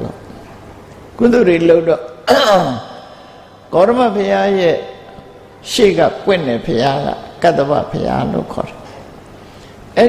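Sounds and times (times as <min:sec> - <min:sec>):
man talking: 0:01.2 - 0:09.0.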